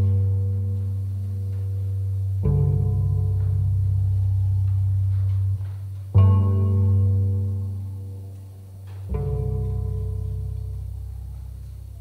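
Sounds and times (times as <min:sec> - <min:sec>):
low plucked cello note: 0:00.0 - 0:12.0.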